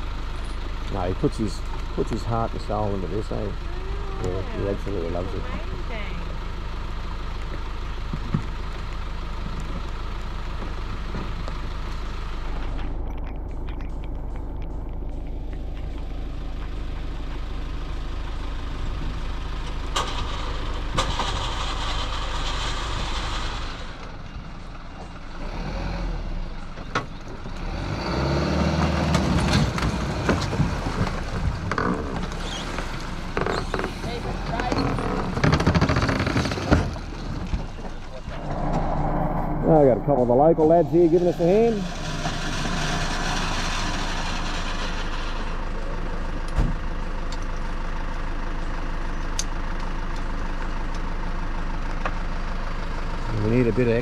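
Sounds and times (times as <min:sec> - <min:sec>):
vehicle engine humming: 0:00.0 - 0:54.0
indistinct voices: 0:00.9 - 0:06.4, 0:37.9 - 0:43.2.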